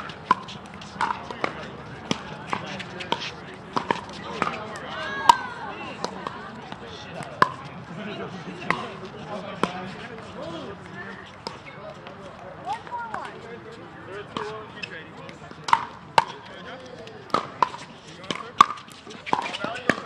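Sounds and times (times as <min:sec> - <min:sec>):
indistinct chatter of voices: 0:00.0 - 0:20.0
paddles striking plastic balls: 0:00.1 - 0:04.6, 0:15.4 - 0:16.4, 0:17.3 - 0:20.0.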